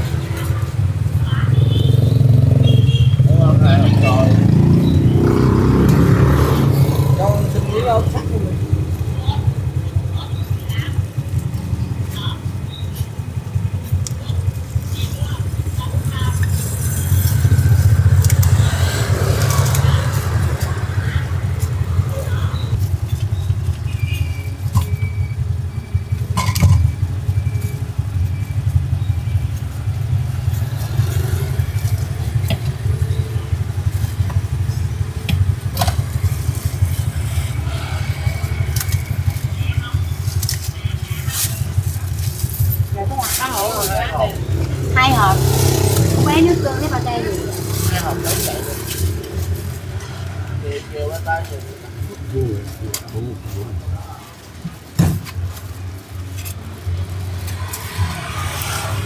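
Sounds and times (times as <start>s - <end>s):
motorbike engine idling: 0.0s - 59.0s
street traffic: 0.0s - 59.0s
faint voices: 36.6s - 54.9s.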